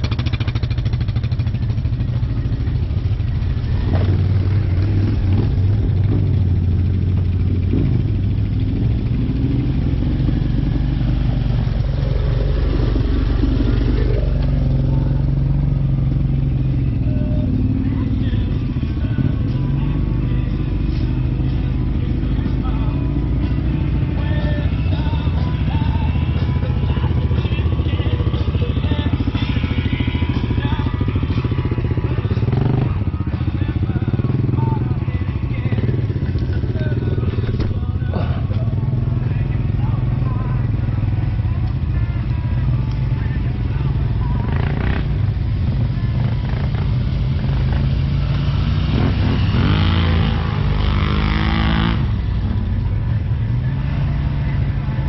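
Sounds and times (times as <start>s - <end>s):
atv engines running: 0.0s - 55.0s.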